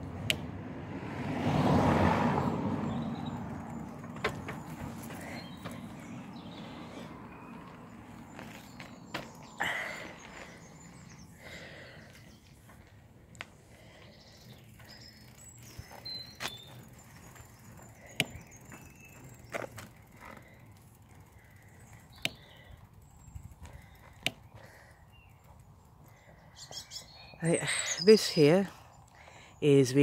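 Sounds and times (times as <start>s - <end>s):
bicycle tyres rumbling on tarmac: 0.0s - 27.4s.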